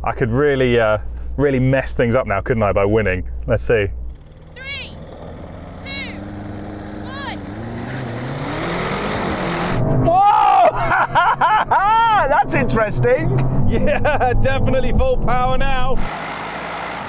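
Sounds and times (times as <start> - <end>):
cars accelerating at full throttle: 4.2 - 10.1, 16.0 - 17.0
man yelling: 10.1 - 10.9.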